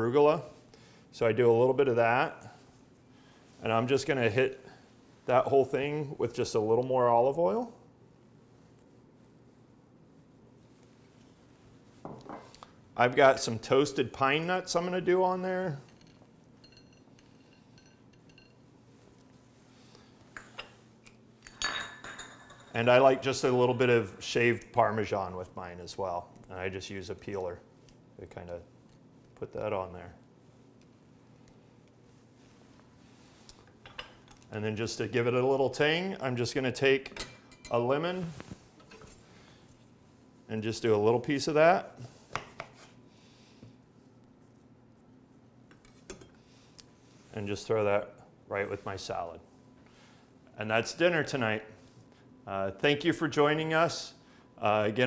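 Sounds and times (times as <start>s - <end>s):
utensils clinking on ceramic plate: 15.9s - 18.6s.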